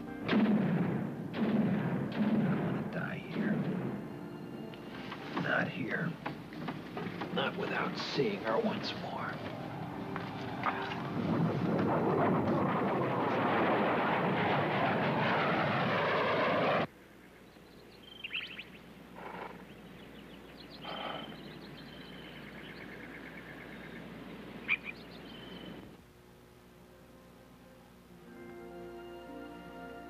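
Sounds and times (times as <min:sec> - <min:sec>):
birds chirping: 0:02.8 - 0:11.3, 0:17.2 - 0:26.0.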